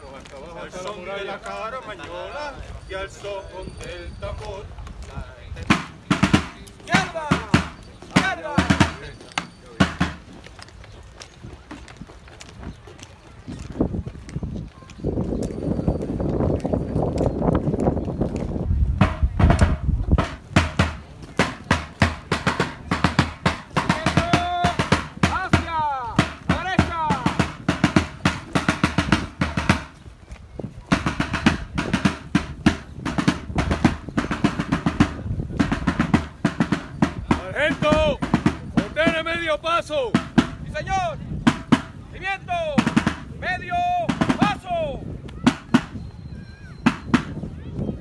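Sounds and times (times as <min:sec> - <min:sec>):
military side drum rolls: 0:05.6 - 0:10.4, 0:18.9 - 0:30.0, 0:30.9 - 0:46.0, 0:46.8 - 0:47.4.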